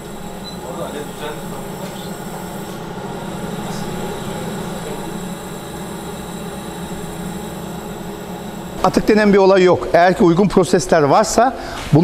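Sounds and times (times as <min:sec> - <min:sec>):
lab equipment humming: 0:00.0 - 0:12.0.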